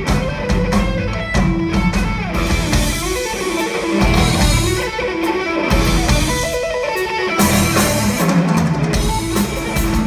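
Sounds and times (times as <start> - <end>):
bass guitar: 0.0 - 10.0
drums: 0.0 - 10.0
electric guitar melody: 0.0 - 10.0.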